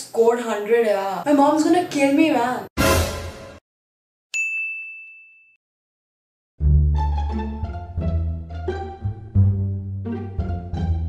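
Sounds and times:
high bell-like ding: 4.4 - 5.6.

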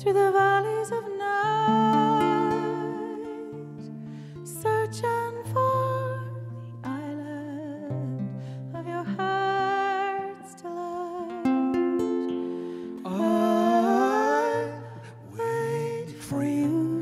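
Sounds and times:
woman singing: 0.0 - 11.8, 12.9 - 17.0
acoustic guitar: 0.0 - 17.0.

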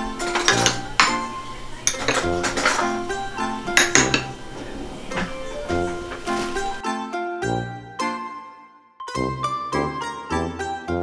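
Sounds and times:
spoons clinking in ceramic bowls: 0.0 - 6.8
background music: 0.0 - 11.0.

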